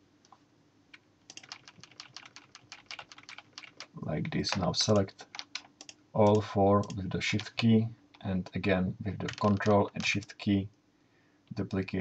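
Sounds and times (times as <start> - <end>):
keyboard typing clicks: 1.3 - 7.6, 9.2 - 10.3.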